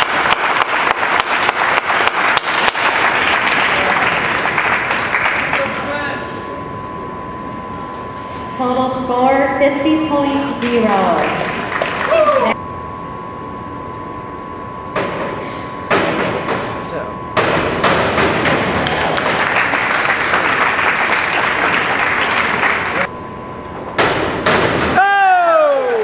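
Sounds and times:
thin steady hum: 0:00.0 - 0:25.7
springboard thuds: 0:15.0 - 0:16.8, 0:17.4 - 0:18.8, 0:24.0 - 0:25.0.

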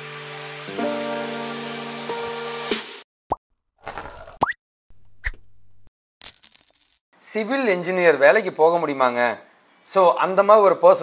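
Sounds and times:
intro music chord: 0:00.0 - 0:03.0.

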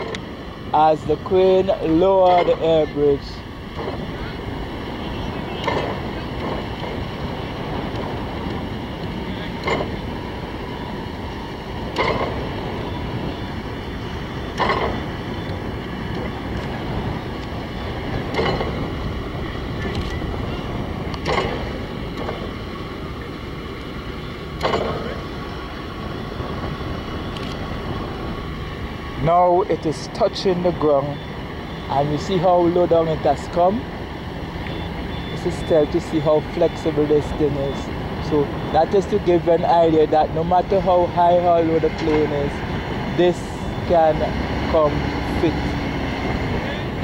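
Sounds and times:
crane diesel engine running: 0:00.0 - 0:47.0
wind on microphone: 0:00.0 - 0:47.0.

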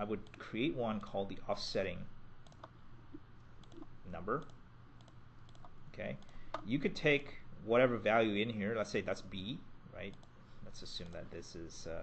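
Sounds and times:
computer mouse and keyboard clicks: 0:02.4 - 0:02.8, 0:03.6 - 0:06.7.

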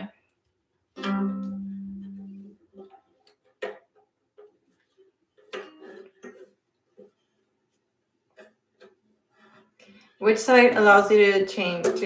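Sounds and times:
brush knocking and rubbing on ukulele: 0:01.3 - 0:07.3.

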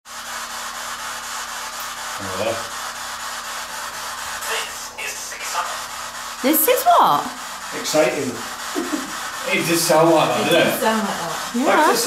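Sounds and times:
radio static hiss: 0:03.7 - 0:12.0.

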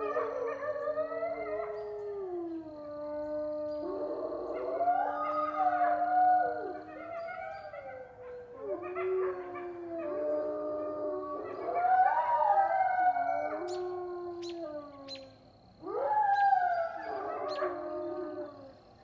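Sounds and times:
wolves howling: 0:00.0 - 0:18.8.

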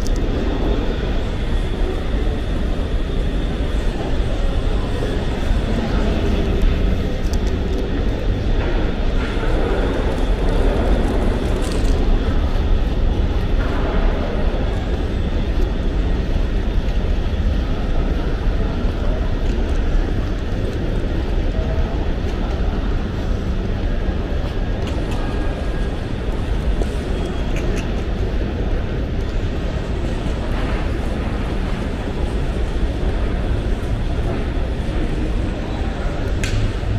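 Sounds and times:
continuous low rumble: 0:00.0 - 0:36.9
faint hubbub of people: 0:00.0 - 0:36.9.

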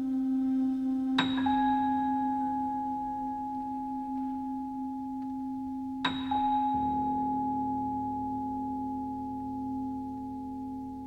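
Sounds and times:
held low tone: 0:00.0 - 0:11.0.

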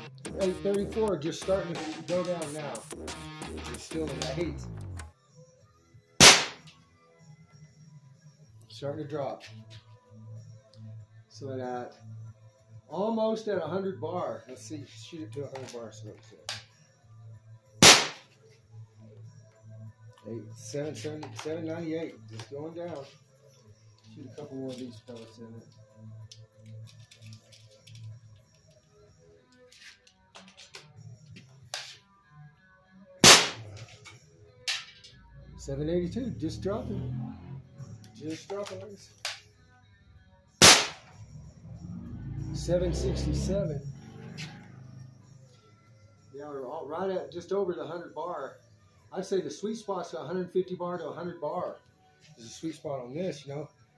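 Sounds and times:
faint music: 0:00.0 - 0:53.9
air rifle shot crack: 0:06.2 - 0:06.6, 0:17.8 - 0:18.2, 0:33.2 - 0:33.6, 0:40.6 - 0:41.1.

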